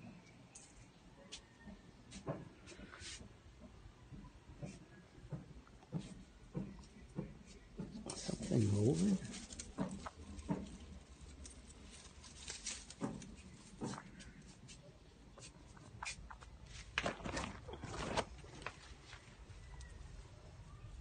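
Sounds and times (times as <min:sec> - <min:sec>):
rustling of leafy plants: 0:04.6 - 0:21.0.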